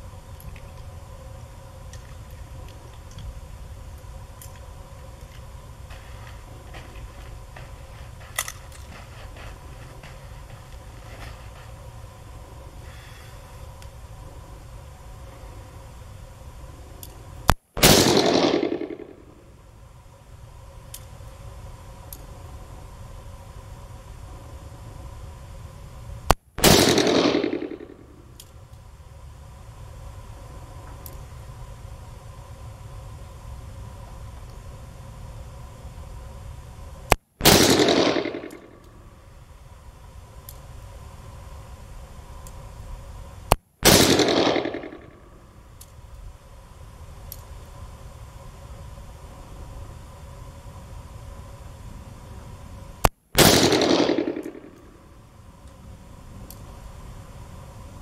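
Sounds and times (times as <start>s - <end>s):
revolver shots with echo: 43.8s - 45.1s, 53.4s - 54.7s.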